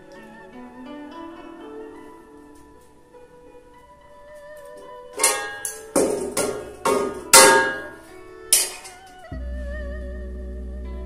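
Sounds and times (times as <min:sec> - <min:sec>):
faint background music: 0:00.0 - 0:11.0
metal utensil clanking against wok: 0:05.2 - 0:09.0.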